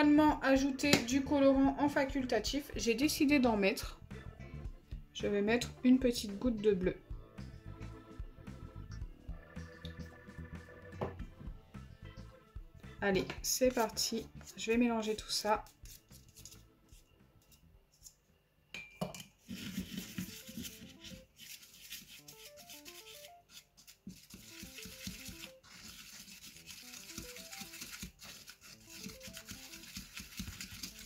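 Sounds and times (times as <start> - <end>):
soft background music: 0.0 - 31.0
plastic fork scraping dough in bowl: 13.4 - 18.2, 19.4 - 31.0.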